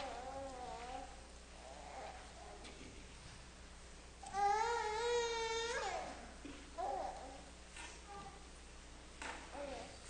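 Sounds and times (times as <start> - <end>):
small child whining: 0.0 - 2.6, 4.2 - 8.5.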